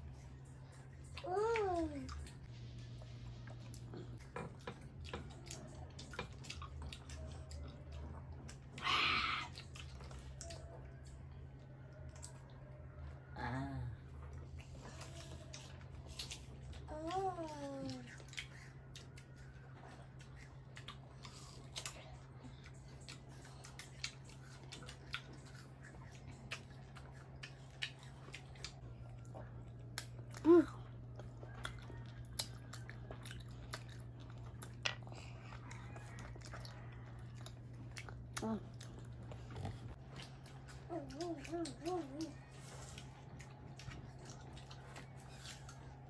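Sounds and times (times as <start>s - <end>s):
person chewing fruit: 0.0s - 13.3s, 14.0s - 46.0s
low steady hum: 0.0s - 46.0s.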